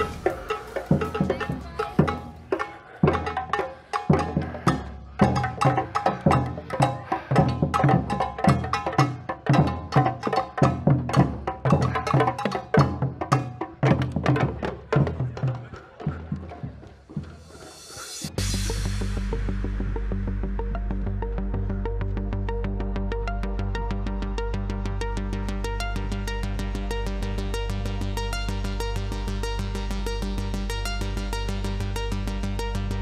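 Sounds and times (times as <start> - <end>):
background music with heavy bass: 0.0 - 14.4, 17.2 - 33.0
drum band playing fast rhythm: 0.0 - 18.5.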